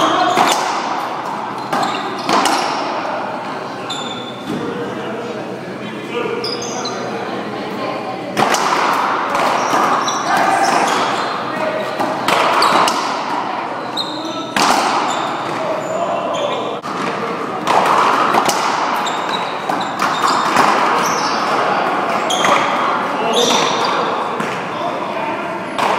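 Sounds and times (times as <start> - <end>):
racquets striking ball: 0.0 - 3.0, 8.3 - 13.5, 14.4 - 15.7, 16.8 - 24.7.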